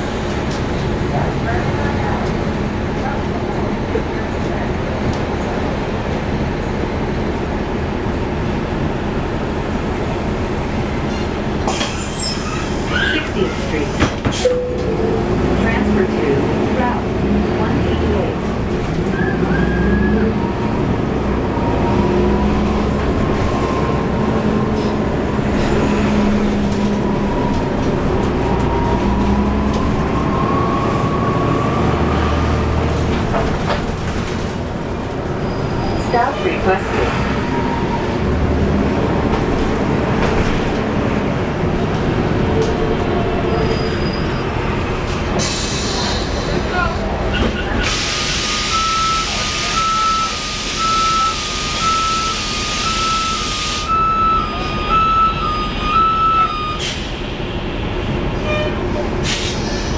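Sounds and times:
bus diesel engine running: 0:00.0 - 0:59.9.

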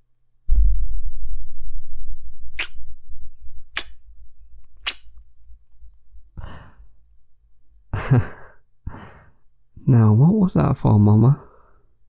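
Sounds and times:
man sighing: 0:06.4 - 0:06.8
short breath: 0:06.4 - 0:07.0
speech: 0:09.8 - 0:11.6.

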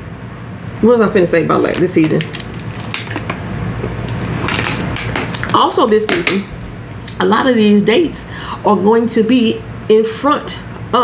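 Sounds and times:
plastic water bottle crinkling: 0:01.6 - 0:03.4, 0:04.1 - 0:05.6.

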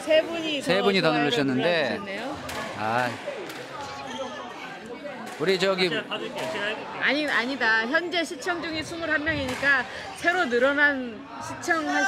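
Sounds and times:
court noise: 0:00.0 - 0:12.0.

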